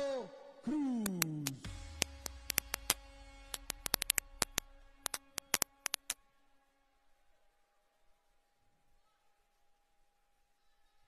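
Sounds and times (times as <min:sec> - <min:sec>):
sharp clicks: 0:01.0 - 0:06.2.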